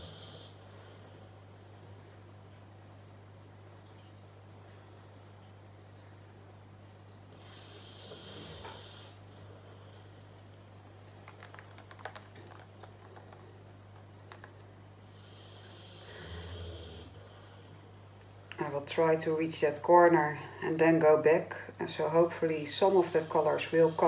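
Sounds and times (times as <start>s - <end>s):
steady low hum: 0.0s - 24.0s
soft breath-like sounds: 7.3s - 10.6s, 15.0s - 18.1s.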